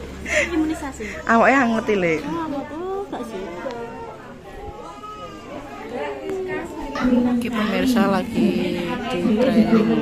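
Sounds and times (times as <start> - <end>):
people talking over one another: 5.6 - 10.0.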